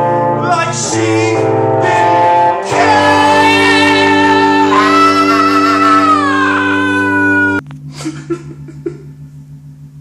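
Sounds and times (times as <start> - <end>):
low steady hum: 0.0 - 10.0
music: 0.0 - 10.0
man wailing held note: 3.4 - 7.6.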